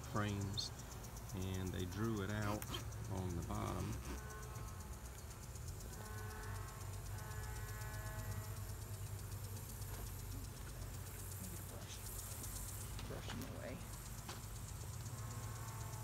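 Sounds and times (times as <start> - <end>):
honey bees buzzing: 0.0 - 16.0.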